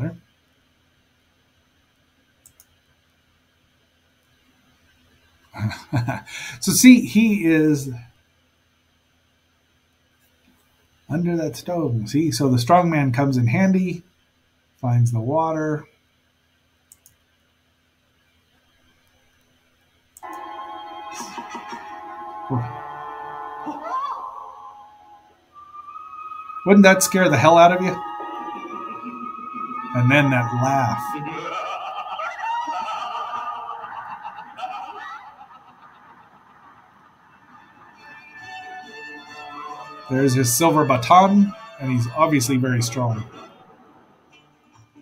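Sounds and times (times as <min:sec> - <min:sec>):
man laughing: 0:05.6 - 0:06.6, 0:21.1 - 0:22.9, 0:26.8 - 0:37.9
organ-like held chord: 0:20.2 - 0:23.8, 0:25.6 - 0:31.9, 0:37.4 - 0:44.9
thin high whistle tone: 0:24.7 - 0:31.8.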